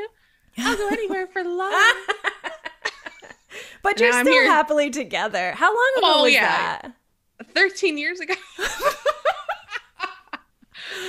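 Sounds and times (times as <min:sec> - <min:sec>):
women laughing: 0:00.6 - 0:03.5, 0:08.3 - 0:11.0
breathy out-breath: 0:03.5 - 0:03.8, 0:10.7 - 0:11.0.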